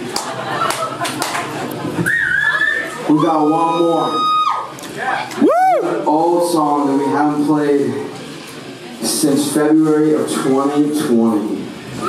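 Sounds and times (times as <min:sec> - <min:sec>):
short whoop: 0:05.4 - 0:05.9.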